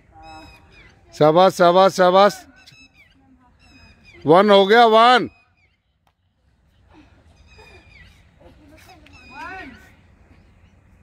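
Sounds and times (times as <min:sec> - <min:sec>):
bird calls: 0:00.0 - 0:11.0.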